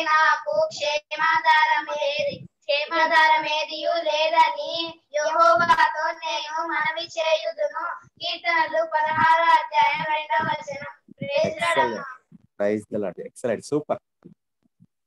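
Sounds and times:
children singing together: 0.0 - 12.0.

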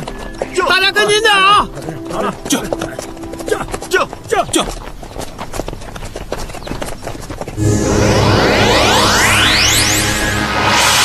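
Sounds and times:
horse hooves clip-clopping on dirt: 0.0 - 7.6.

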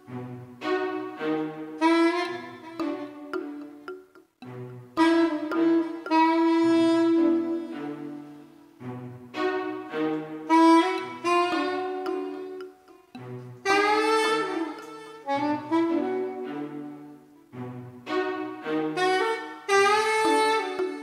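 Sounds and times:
sustained low backing notes: 0.0 - 21.0
soprano saxophone improvising: 1.8 - 4.0, 5.0 - 8.4, 10.4 - 17.1, 18.9 - 21.0.

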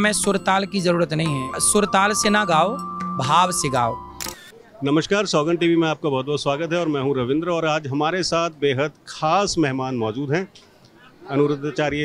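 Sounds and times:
person speaking: 0.0 - 4.3
sharp click: 4.2 - 4.5.

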